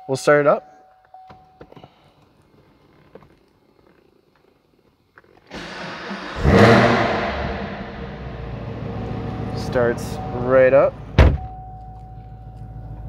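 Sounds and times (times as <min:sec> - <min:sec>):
car engine starting and idling: 0:05.2 - 0:13.0.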